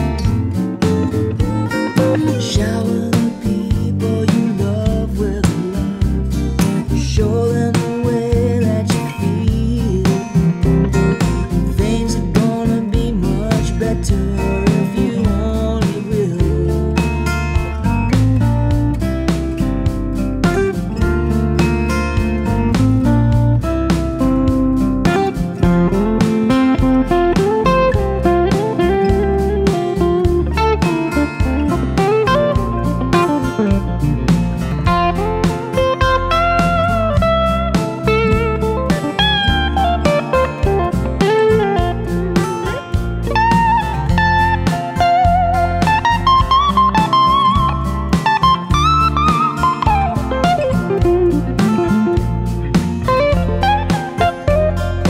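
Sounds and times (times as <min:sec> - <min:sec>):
electric guitar lead solo: 0:00.0 - 0:02.6, 0:17.4 - 0:55.0
acoustic guitar chords: 0:00.0 - 0:55.0.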